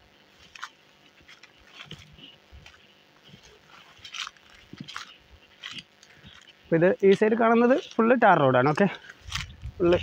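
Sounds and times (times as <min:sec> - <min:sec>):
footsteps crunching dry leaves: 0:00.0 - 0:10.0.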